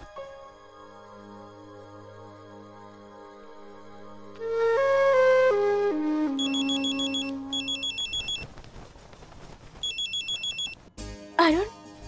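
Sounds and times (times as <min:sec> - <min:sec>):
mobile phone ringing trill: 0:06.4 - 0:08.4, 0:09.8 - 0:10.8.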